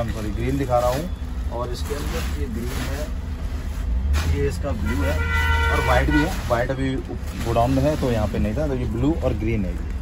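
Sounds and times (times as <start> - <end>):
street traffic rumble: 0.0 - 10.0.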